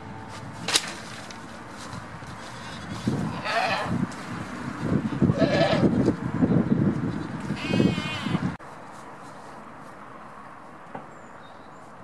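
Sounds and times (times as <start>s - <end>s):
goats bleating: 3.3s - 4.0s, 7.6s - 8.4s.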